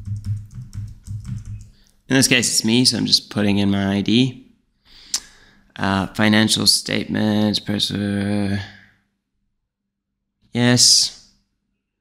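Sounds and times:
keyboard typing: 0.0s - 1.8s.

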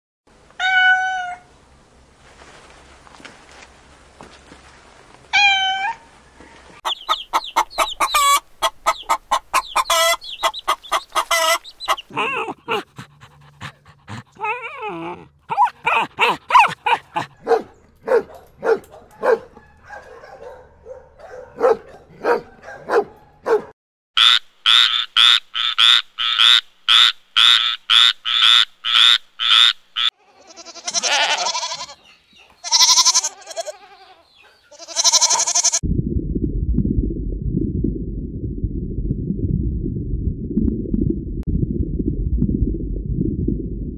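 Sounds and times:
kitten meowing: 0.6s - 1.4s, 5.4s - 6.0s, 30.5s - 32.0s
small dog barking and yapping: 14.4s - 23.7s
goats bleating: 30.2s - 32.0s, 32.6s - 35.8s.

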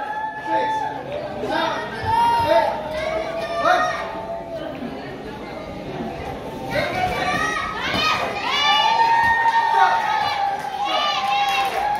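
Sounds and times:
spectators shouting and cheering: 0.0s - 4.9s, 6.5s - 11.9s.

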